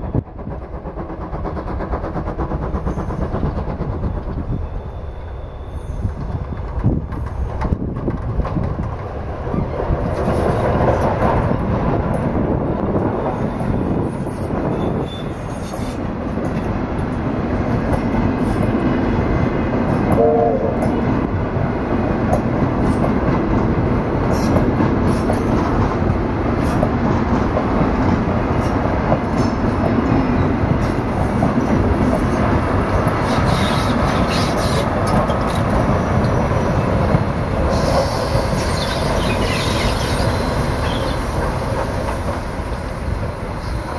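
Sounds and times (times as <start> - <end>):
wheels clacking over rail joints: 0.0 - 13.0, 22.2 - 43.9
train rolling past: 0.0 - 43.9
hiss with thin squeal: 4.6 - 6.1, 14.9 - 16.0, 33.2 - 34.9, 37.7 - 41.4.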